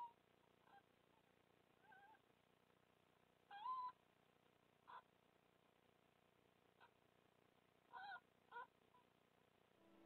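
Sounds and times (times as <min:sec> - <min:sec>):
fox cubs squeaking: 0:03.5 - 0:04.0, 0:07.9 - 0:09.1.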